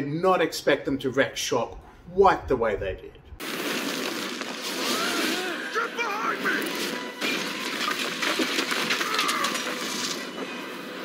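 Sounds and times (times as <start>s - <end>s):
sharp cracks: 3.4s - 10.3s
fire and crashing destruction: 3.4s - 11.0s.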